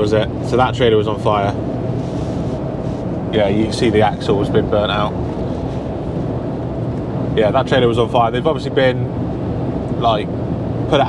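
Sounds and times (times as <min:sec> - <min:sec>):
lorry engine and road noise: 0:00.0 - 0:11.0.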